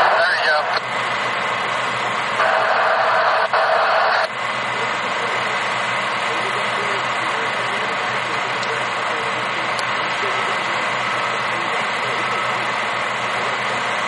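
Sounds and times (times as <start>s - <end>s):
garbled radio voice: 0.0s - 0.8s, 2.4s - 13.8s
low hum: 0.0s - 14.0s
radio hiss: 0.0s - 14.0s.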